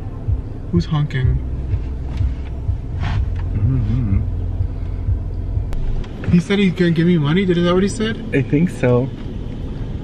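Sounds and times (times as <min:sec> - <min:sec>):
car cabin rumble: 0:00.0 - 0:10.0
murmured voice: 0:03.5 - 0:04.3.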